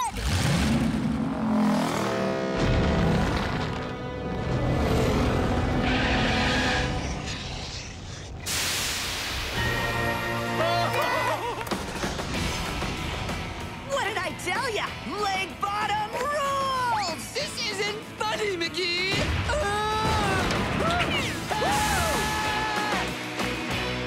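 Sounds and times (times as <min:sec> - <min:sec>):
dramatic music: 0:00.1 - 0:08.6, 0:09.3 - 0:24.0.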